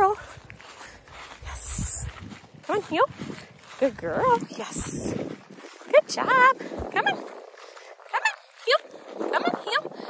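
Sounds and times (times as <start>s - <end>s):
woman speaking to a dog: 0.0s - 0.2s, 1.4s - 5.2s, 5.8s - 7.3s, 8.1s - 9.9s
footsteps on grass: 0.0s - 10.0s.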